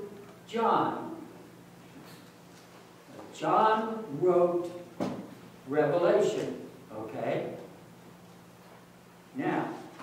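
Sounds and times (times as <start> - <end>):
man speaking: 0.0 - 1.3, 3.2 - 4.9, 5.7 - 7.7, 9.4 - 9.9.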